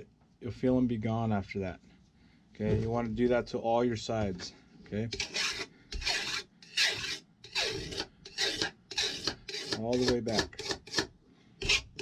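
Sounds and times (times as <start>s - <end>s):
steel file rasping on metal: 5.1s - 12.0s.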